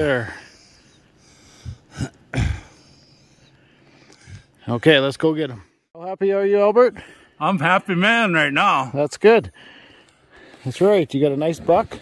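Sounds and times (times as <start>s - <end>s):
man clearing his throat: 1.9s - 2.8s.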